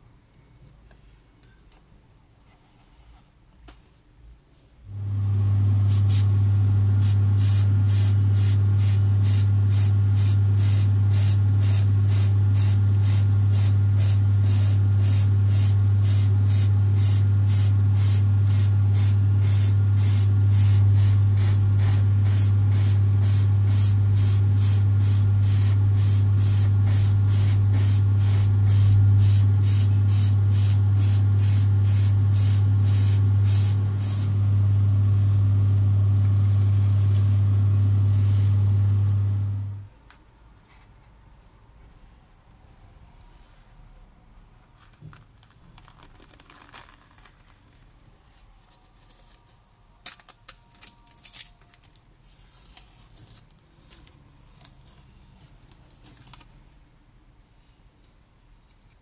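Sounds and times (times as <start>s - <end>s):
steady low hum: 4.8s - 39.9s
airbrush hissing: 5.9s - 6.3s, 7.0s - 34.4s.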